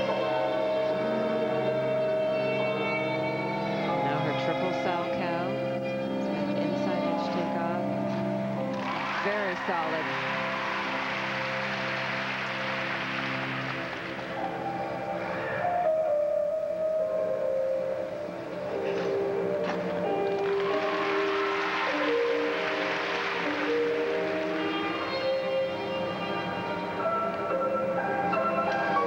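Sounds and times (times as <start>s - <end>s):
instrumental music with long held notes: 0.0s - 29.0s.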